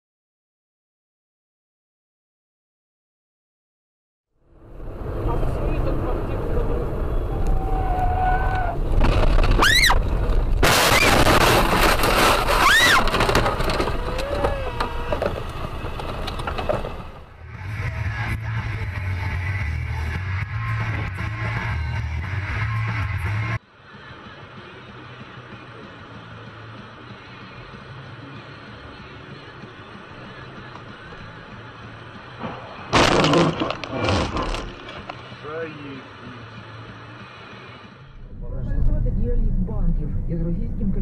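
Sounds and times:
car and road noise: 0:04.3 - 0:41.0
voices crying out: 0:06.8 - 0:08.9, 0:13.7 - 0:15.5
crash impact and breaking glass: 0:10.5 - 0:14.0, 0:32.7 - 0:35.1.

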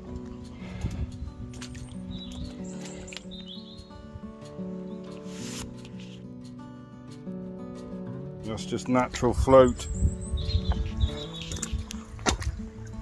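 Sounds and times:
footsteps on wet gravel: 0:00.0 - 0:07.9
background music with held notes: 0:00.0 - 0:13.0
bird chirping: 0:01.2 - 0:06.1, 0:09.6 - 0:11.9.

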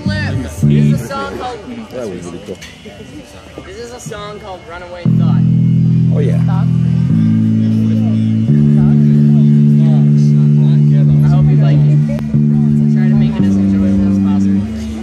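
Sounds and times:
electric guitar chords: 0:00.0 - 0:01.4, 0:04.1 - 0:15.0.

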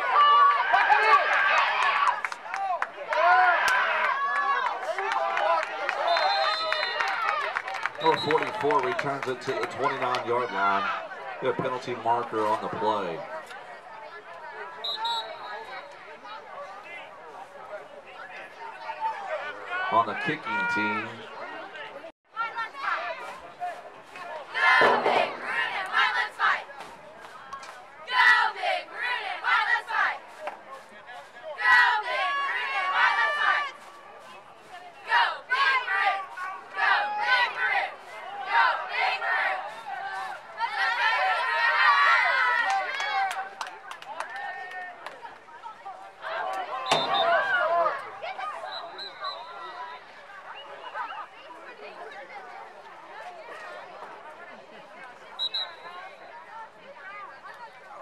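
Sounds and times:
crowd talking and shouting: 0:00.0 - 0:58.0.

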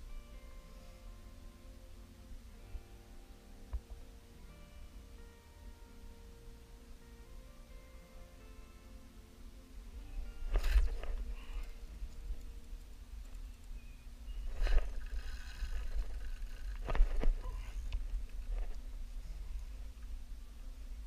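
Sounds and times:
faint background music: 0:00.0 - 0:21.0
wind rumble on microphone: 0:10.2 - 0:21.0
fishing rod rustling and knocking: 0:10.3 - 0:13.8, 0:14.4 - 0:20.1.

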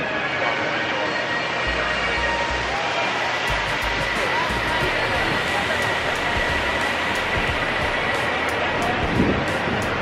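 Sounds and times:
faint music: 0:00.0 - 0:10.0
fountain water jets hissing: 0:00.0 - 0:10.0.

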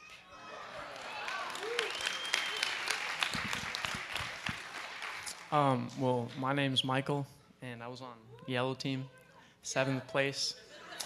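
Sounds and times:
audience applause: 0:00.4 - 0:05.7.

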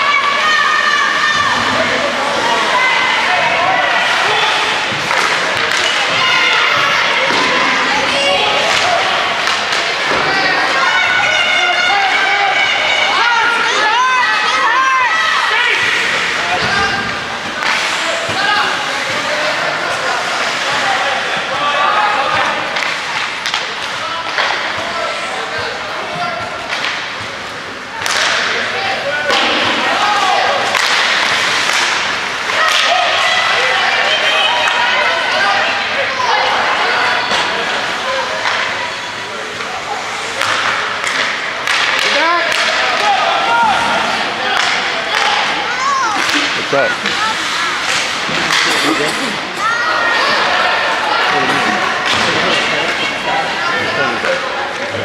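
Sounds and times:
players calling and shouting: 0:00.0 - 0:55.0
hockey puck and stick clacks: 0:04.0 - 0:10.8, 0:15.7 - 0:21.5, 0:22.3 - 0:25.0, 0:26.4 - 0:34.8, 0:37.3 - 0:38.8, 0:39.5 - 0:49.3, 0:51.1 - 0:53.2.

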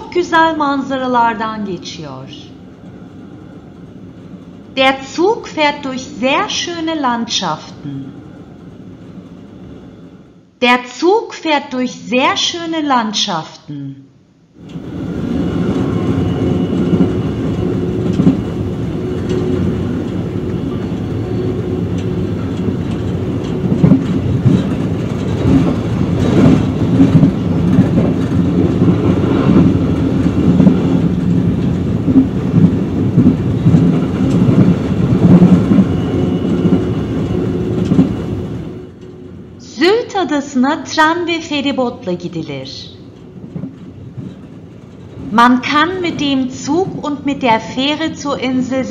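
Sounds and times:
train wheels rumbling on rails: 0:00.0 - 0:10.4, 0:14.6 - 0:39.6, 0:42.4 - 0:48.6
clacks over rail joints: 0:21.9 - 0:38.2, 0:43.1 - 0:45.4.

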